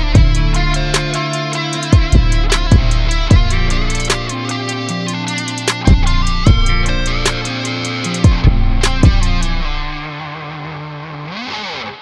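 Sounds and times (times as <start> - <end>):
distorted electric guitar note: 0.0 - 12.0.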